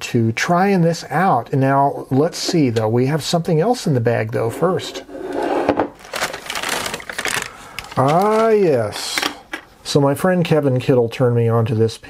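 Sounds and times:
paper bag crinkling: 6.0s - 9.0s.

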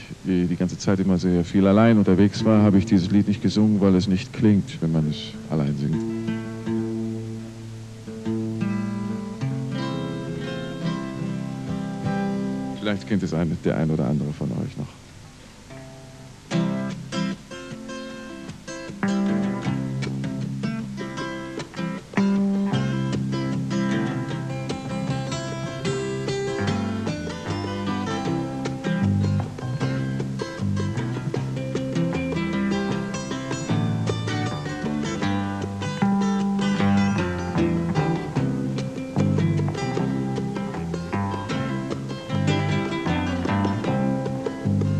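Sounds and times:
double bass line: 0.0s - 14.7s, 15.9s - 44.9s
picked acoustic guitars: 0.0s - 44.9s
hand drum: 16.5s - 44.9s.

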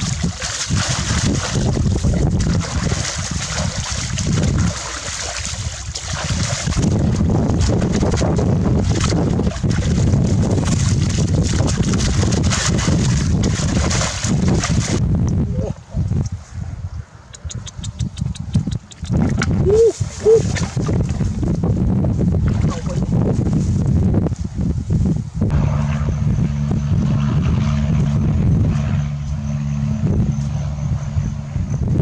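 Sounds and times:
muddy water splashing: 0.0s - 15.0s, 17.4s - 21.7s, 22.3s - 23.2s
wind rumble on microphone: 0.0s - 32.0s.

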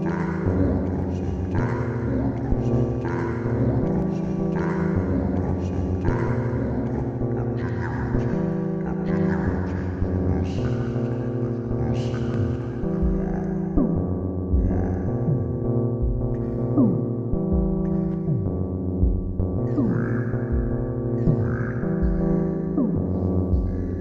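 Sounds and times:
sequenced synth tones: 0.0s - 24.0s.

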